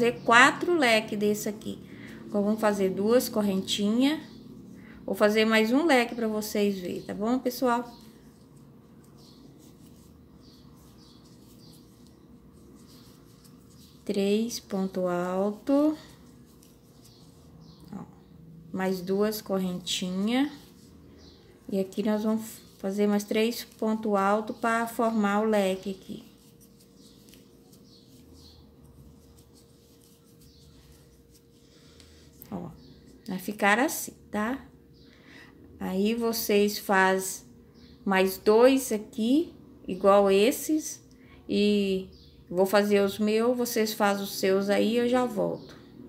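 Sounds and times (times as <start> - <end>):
crochet thread rubbing and scratching: 0.0 - 4.4, 5.2 - 33.9
faint steady hum: 0.0 - 42.6.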